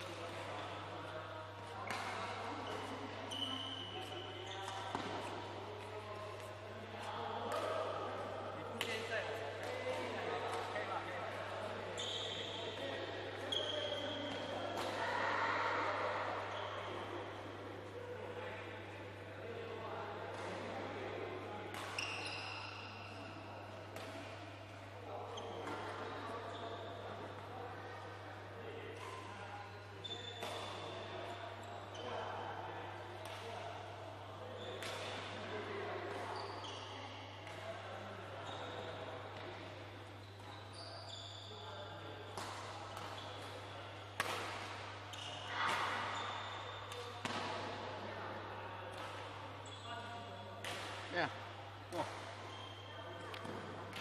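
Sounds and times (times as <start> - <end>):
shoes squeaking on court floor: 0.6 - 7.8, 11.9 - 14.8, 21.8 - 23.3, 25.3 - 27.0, 29.1 - 32.2, 36.1 - 37.6, 38.4 - 39.5, 40.1 - 47.7, 49.0 - 51.1, 51.9 - 54.0
racket hitting shuttlecock: 1.7 - 3.0, 44.2 - 44.9, 50.6 - 51.0.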